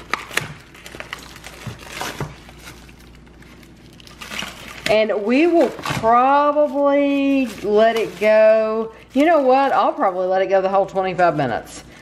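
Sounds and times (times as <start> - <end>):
plastic wrap crinkling: 0.0 - 11.7.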